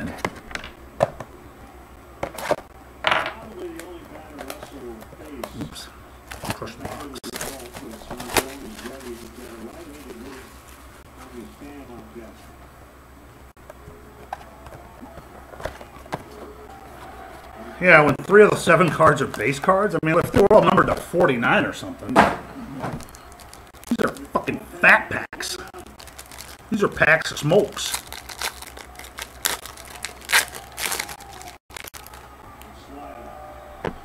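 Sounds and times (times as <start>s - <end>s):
crinkly rustle of plastic: 6.2s - 12.5s, 23.0s - 24.3s, 25.4s - 26.7s, 27.6s - 32.3s.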